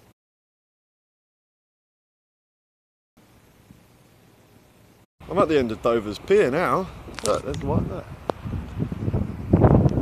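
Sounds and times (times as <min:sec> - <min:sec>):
wind buffeting microphone: 0:05.3 - 0:10.0.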